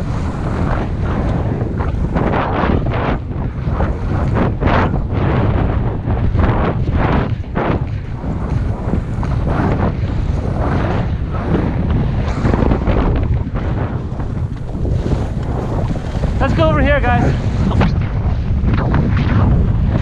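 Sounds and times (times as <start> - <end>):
wind rumbling on microphone: 0.0 - 20.0
skis scraping on snow: 8.0 - 13.0, 13.6 - 17.8.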